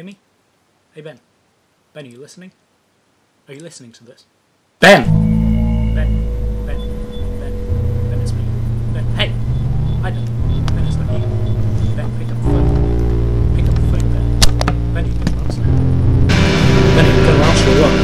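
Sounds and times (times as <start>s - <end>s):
harsh noise: 4.9s - 18.0s
low sustained drones: 5.1s - 18.0s
scattered clicks: 10.0s - 11.0s
sharp crack: 13.6s - 15.7s.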